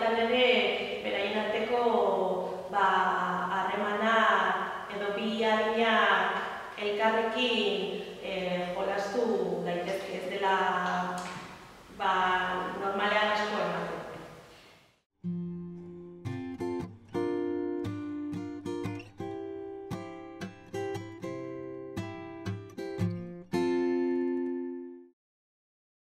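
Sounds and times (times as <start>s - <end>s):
acoustic guitar jingle: 15.2s - 25.1s.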